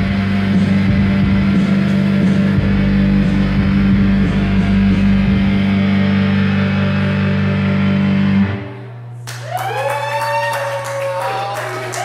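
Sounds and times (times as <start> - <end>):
electric keyboards sustained chord: 0.0 - 9.0
audience whooping and clapping: 9.2 - 12.0.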